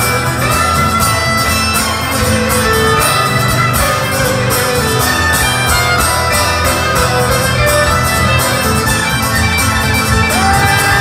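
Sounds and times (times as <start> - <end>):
fiddle melody: 0.0 - 11.0
live rock band playing: 0.0 - 11.0.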